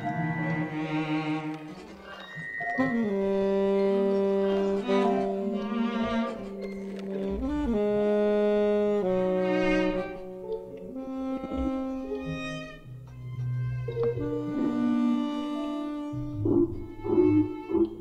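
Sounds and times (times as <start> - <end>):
improvised electronic saxophone music: 0.0 - 18.0.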